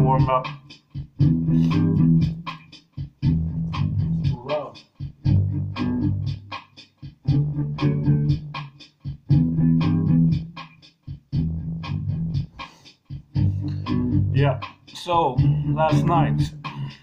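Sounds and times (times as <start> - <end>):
distorted electric guitar chords: 0.0 - 0.5, 1.2 - 2.5, 5.2 - 6.5, 7.2 - 8.6, 9.3 - 10.5, 13.3 - 14.4.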